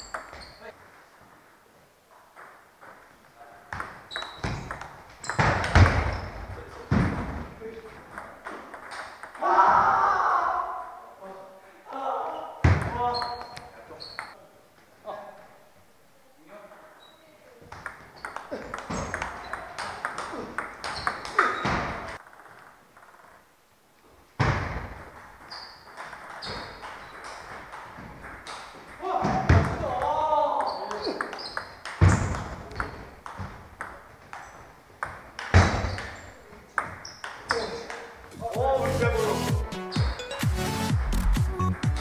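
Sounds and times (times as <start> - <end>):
person speaking: 37.5 - 39.9.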